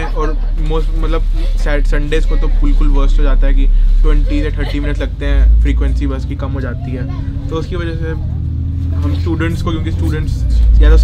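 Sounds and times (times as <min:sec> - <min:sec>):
bus engine rumble: 0:00.0 - 0:11.0
voices talking: 0:00.0 - 0:11.0.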